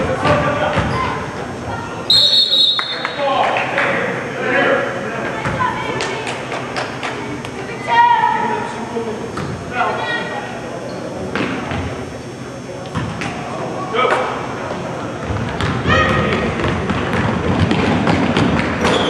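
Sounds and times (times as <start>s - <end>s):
crowd noise: 0.0s - 19.0s
basketball thumping on hardwood floor: 15.2s - 18.7s.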